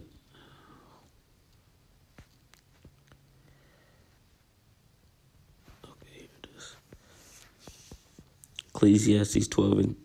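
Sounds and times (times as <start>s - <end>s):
low steady hum: 0.0s - 10.0s
man whispering: 5.7s - 6.9s.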